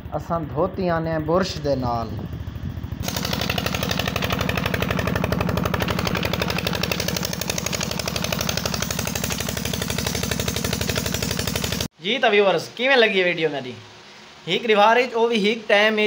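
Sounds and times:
diesel engine knocking: 0:02.8 - 0:11.9.

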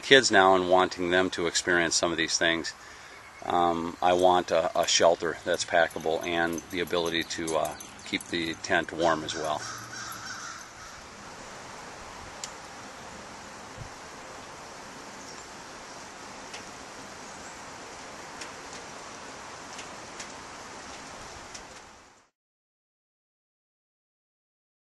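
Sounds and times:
outdoor background noise: 0:00.0 - 0:22.3
bird call: 0:05.9 - 0:11.1.

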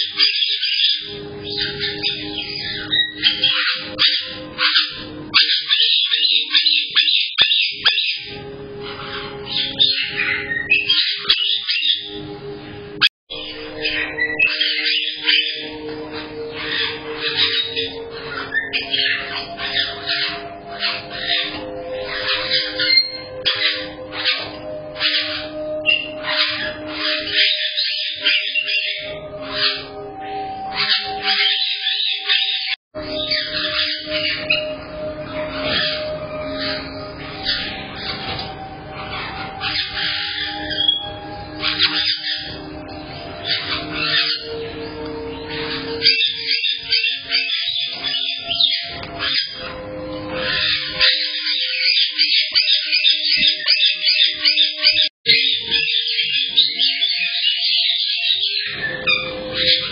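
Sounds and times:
music with held notes: 0:00.0 - 0:59.9
parrots chirping and squawking: 0:00.0 - 0:59.9.

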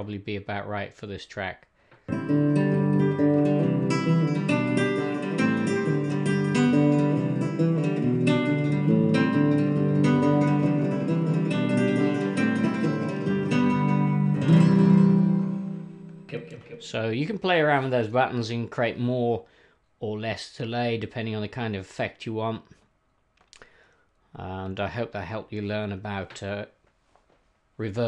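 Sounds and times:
acoustic guitar with echo delay: 0:02.1 - 0:17.0.

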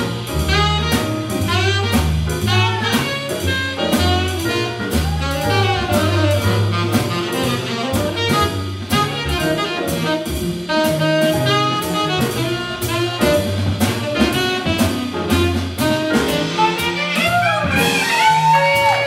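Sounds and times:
piano: 0:00.0 - 0:19.0
saxophone lead line: 0:00.0 - 0:19.0
walking upright bass: 0:00.0 - 0:19.0.

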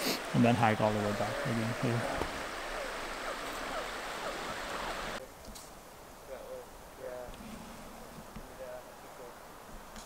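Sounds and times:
river rushing: 0:00.0 - 0:05.2.

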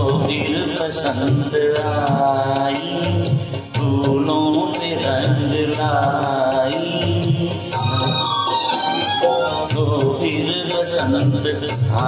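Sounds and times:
karaoke backing track: 0:00.0 - 0:12.0
man singing into microphone: 0:00.0 - 0:12.0.

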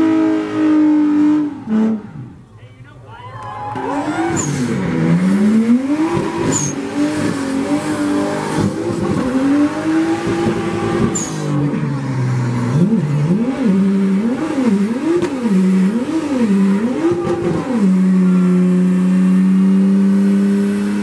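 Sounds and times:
car engine revving: 0:00.0 - 0:02.5, 0:03.7 - 0:21.0.

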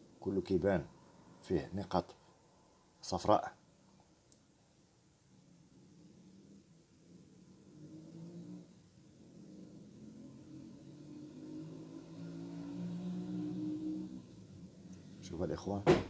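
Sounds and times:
low mechanical hum: 0:03.6 - 0:16.0.

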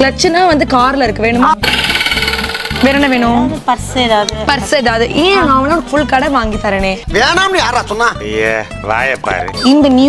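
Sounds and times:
woman talking: 0:02.8 - 0:07.0, 0:09.6 - 0:10.0.

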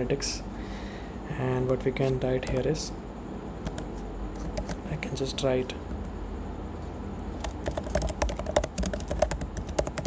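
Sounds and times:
computer keyboard typing: 0:02.4 - 0:02.8, 0:03.6 - 0:04.9, 0:07.4 - 0:10.0.

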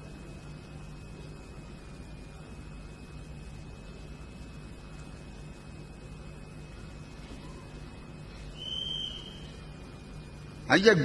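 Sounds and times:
recording hiss and hum: 0:00.0 - 0:11.0
high-pitched whistle-like tone: 0:08.4 - 0:09.7.

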